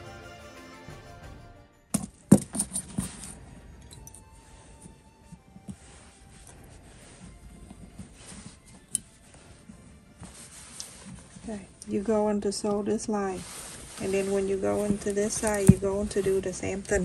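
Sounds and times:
background music: 0.0s - 17.0s
soft fabric handling: 2.1s - 17.0s.

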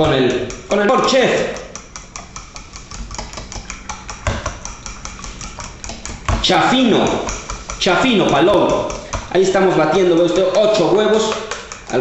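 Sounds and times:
fork beating eggs in a bowl: 0.0s - 12.0s.

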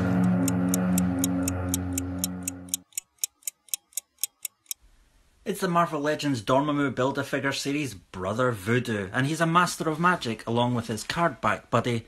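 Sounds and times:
sustained music chord: 0.0s - 2.8s
stopwatch ticking: 0.0s - 4.8s.

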